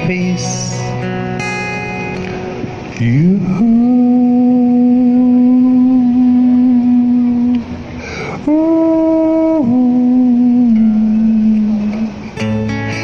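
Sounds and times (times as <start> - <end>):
acoustic guitar chord: 0.0 - 8.0.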